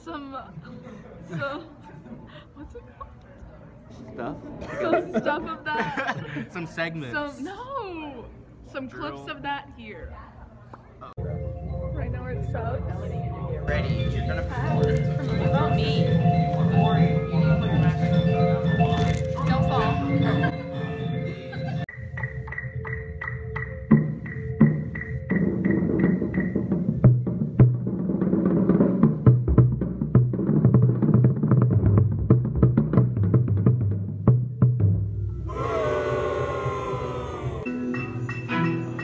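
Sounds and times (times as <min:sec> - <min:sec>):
voices: 0:35.5 - 0:37.7.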